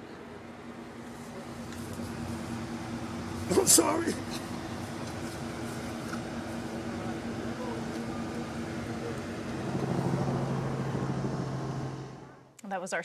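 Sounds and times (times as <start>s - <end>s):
engine hum: 0.0s - 12.6s
low-pitched hum: 0.0s - 12.6s
outdoor background noise: 0.0s - 13.0s.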